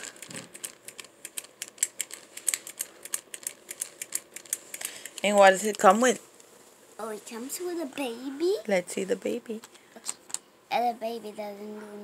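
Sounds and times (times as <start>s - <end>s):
plastic toy clicking and tapping: 0.1s - 5.3s.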